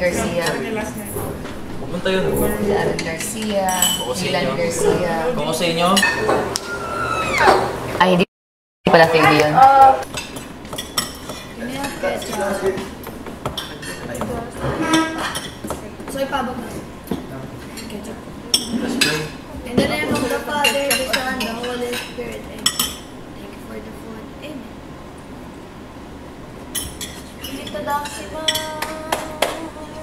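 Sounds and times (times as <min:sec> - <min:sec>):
cutlery clinking on plates: 0:05.9 - 0:06.5, 0:10.1 - 0:15.8, 0:17.1 - 0:23.1, 0:26.7 - 0:29.5.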